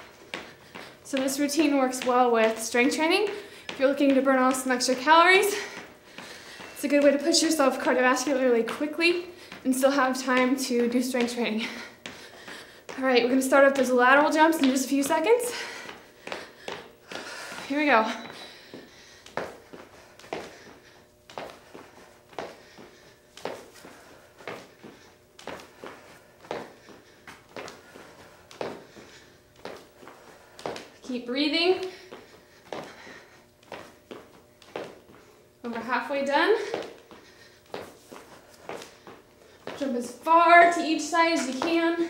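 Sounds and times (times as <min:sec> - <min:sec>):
woman speaking: 0:01.1 - 0:05.7, 0:06.8 - 0:11.8, 0:13.0 - 0:15.6, 0:17.7 - 0:18.3, 0:31.1 - 0:31.9, 0:35.6 - 0:36.7, 0:39.8 - 0:42.0
sneakers thudding on floor: 0:41.4 - 0:42.0.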